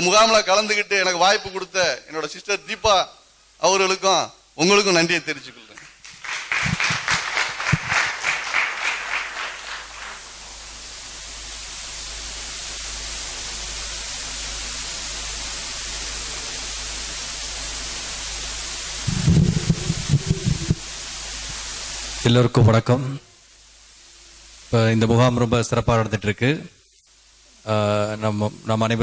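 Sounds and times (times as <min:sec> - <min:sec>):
steady hiss: 0:00.0 - 0:29.0
audience clapping: 0:05.7 - 0:10.7, 0:19.1 - 0:20.8
man speaking: 0:27.7 - 0:29.0.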